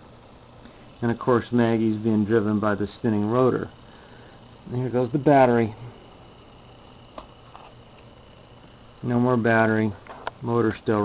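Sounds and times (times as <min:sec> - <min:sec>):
small motor humming: 0:00.0 - 0:11.0
thin high whine: 0:00.0 - 0:11.0.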